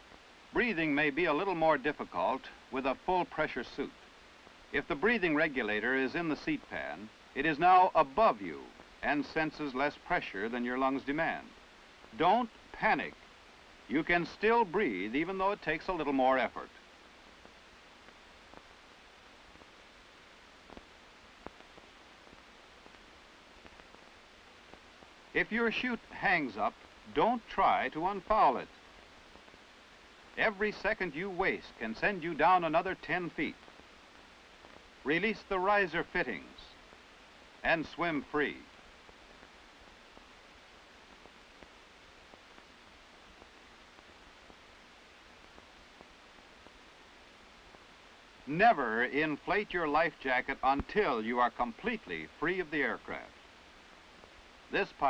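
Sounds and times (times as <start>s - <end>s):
film soundtrack hiss: 0.0s - 55.0s
small irregular clicks: 16.6s - 25.3s.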